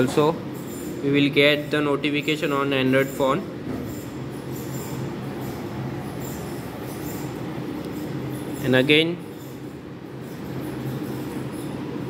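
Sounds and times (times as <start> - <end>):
water pump humming: 0.0 - 12.0.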